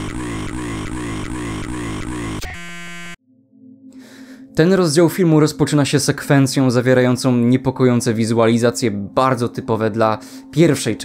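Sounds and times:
distorted voice stuttering: 0.0s - 2.9s
harsh electronic buzz: 0.0s - 3.2s.

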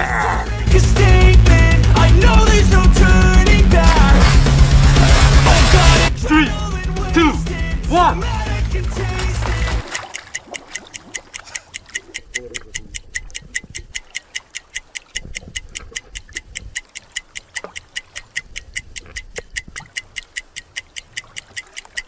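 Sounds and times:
clock ticking rapidly: 1.0s - 22.0s.

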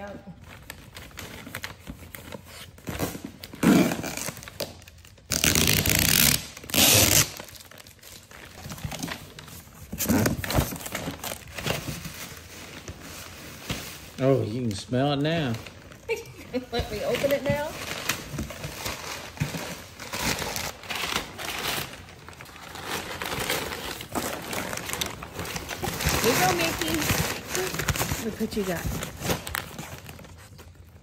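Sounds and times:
wrapping paper crinkling: 0.3s - 31.0s
packing tape ripping off cardboard: 0.6s - 14.1s, 17.0s - 31.0s.

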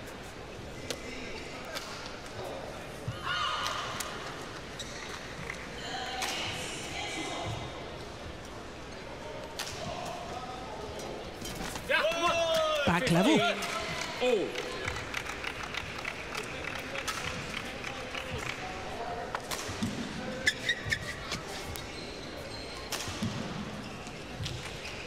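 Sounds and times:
crowd chatter: 0.0s - 24.4s.

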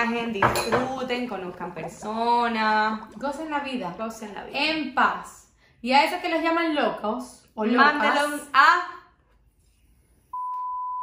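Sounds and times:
censor bleep tone: 10.3s - 11.0s.

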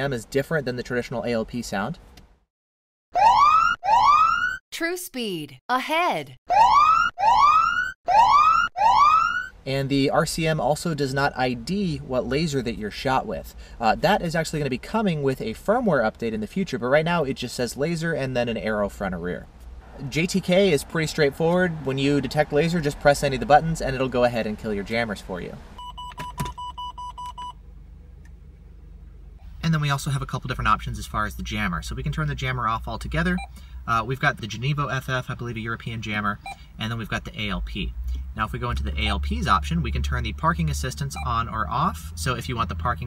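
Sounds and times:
rising electronic whoop alert: 6.5s - 9.5s
rapid short beeps: 25.8s - 27.6s, 36.4s - 36.7s.

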